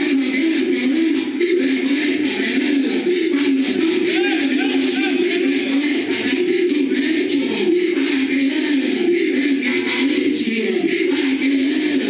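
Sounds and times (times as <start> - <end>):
man singing through sound system: 0.0 - 12.0.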